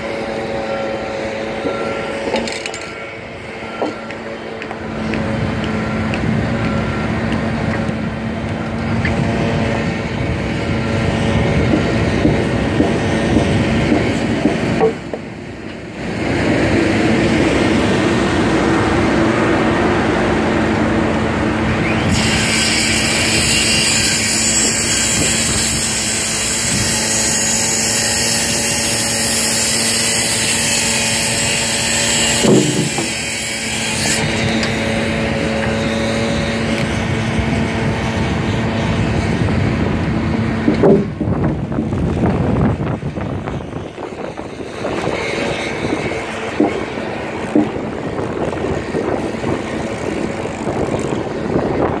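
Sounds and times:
construction machinery droning: 0.0s - 52.0s.

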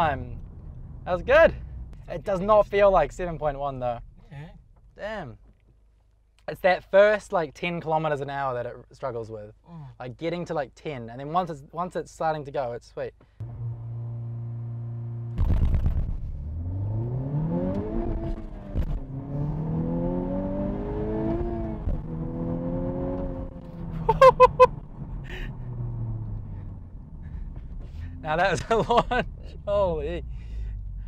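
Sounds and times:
car engine revving and accelerating: 13.4s - 24.0s.

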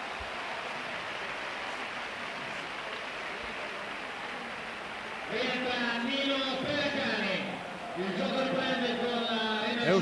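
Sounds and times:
crowd noise in an arena: 0.0s - 10.0s.

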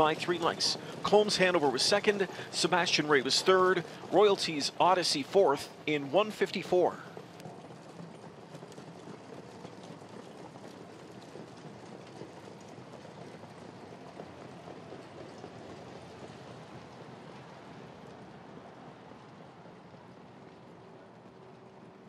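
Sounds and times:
horse hoofbeats on dirt: 0.0s - 22.0s.

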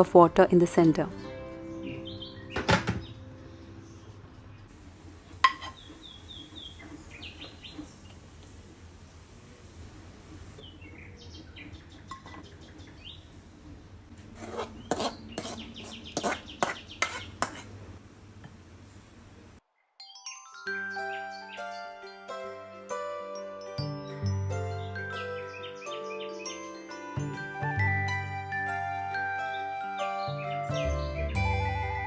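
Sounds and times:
spoon clinking ceramic dishes: 5.4s - 5.8s.

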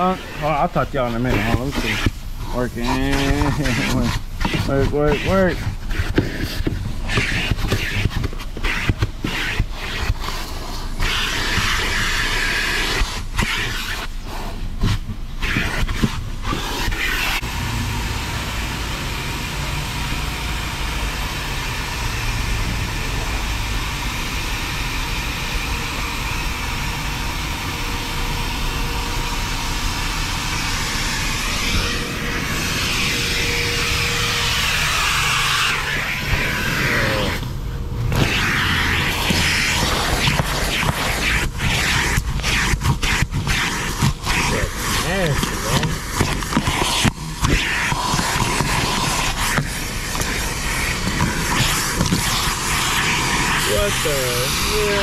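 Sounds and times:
vacuum cleaner sucking up dirt: 0.0s - 55.0s.

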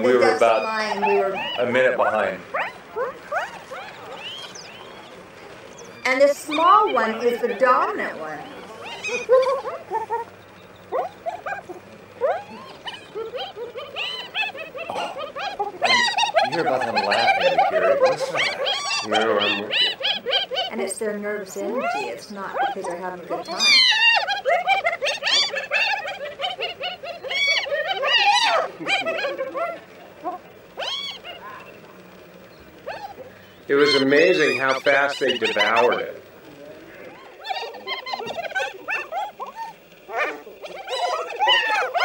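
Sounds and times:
hyenas giggling: 0.0s - 42.0s.

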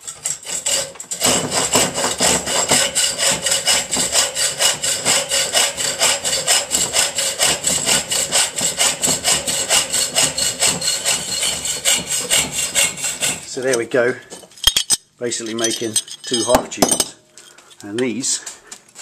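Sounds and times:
hacksaw cutting steel tube: 0.0s - 13.8s.

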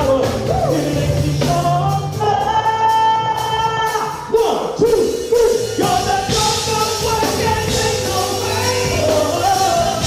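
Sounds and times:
gospel group singing with band: 0.0s - 10.0s.

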